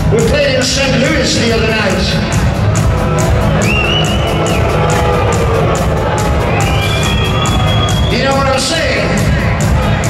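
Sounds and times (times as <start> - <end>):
steady cymbal beat: 0.0 - 10.0.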